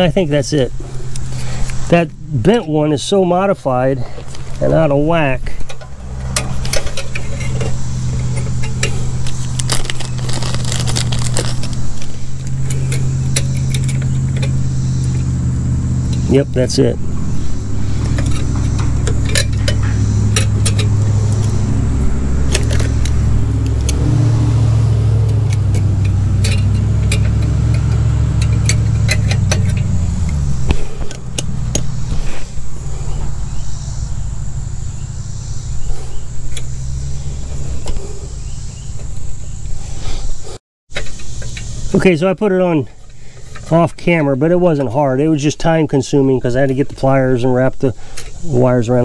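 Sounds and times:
steady low drone: 0:00.0 - 0:40.0.

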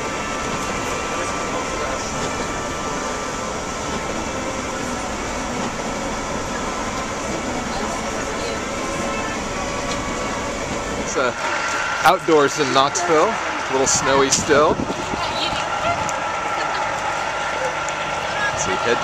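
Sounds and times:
bus engine drone: 0:00.0 - 0:19.0
tyres on wet road: 0:00.0 - 0:19.0.

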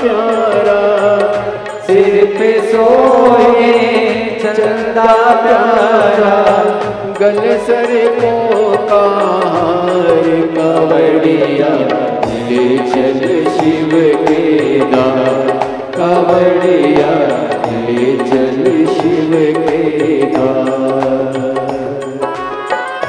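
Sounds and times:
steady percussion beat: 0:00.0 - 0:23.0.

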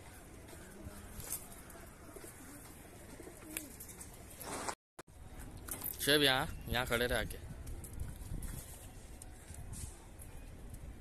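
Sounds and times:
pigeons cooing: 0:01.9 - 0:04.1.

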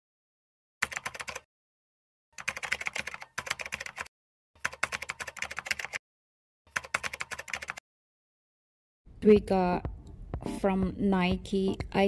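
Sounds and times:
computer keyboard typing: 0:00.8 - 0:01.5, 0:02.4 - 0:06.0, 0:06.7 - 0:07.8.

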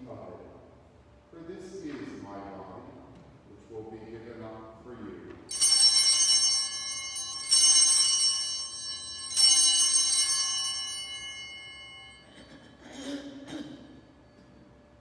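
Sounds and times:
small altar bells ringing: 0:05.5 - 0:15.0.

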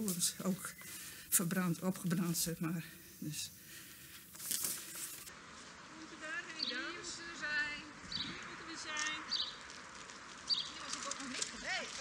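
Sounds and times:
birds singing: 0:00.0 - 0:04.1, 0:06.0 - 0:09.7, 0:10.4 - 0:11.1.

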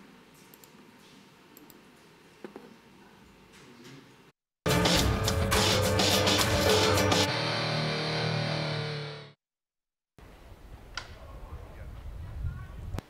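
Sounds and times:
distorted electric guitar sting: 0:04.7 - 0:09.3.

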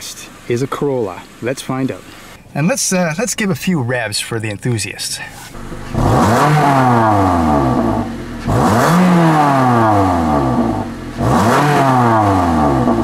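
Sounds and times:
car engine revving: 0:05.5 - 0:13.0.

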